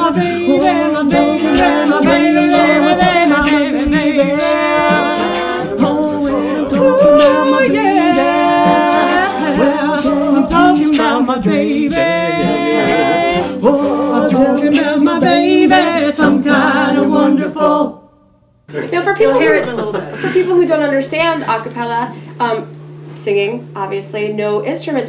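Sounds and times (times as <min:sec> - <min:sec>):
a cappella group singing: 0:00.0 - 0:18.3.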